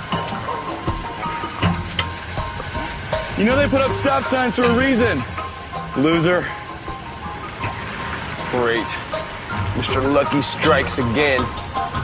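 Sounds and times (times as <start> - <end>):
background music held tones: 0.0 - 12.0.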